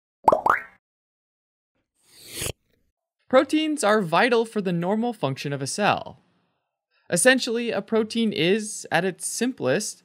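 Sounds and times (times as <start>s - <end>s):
rising pitch pops: 0.2s - 0.8s.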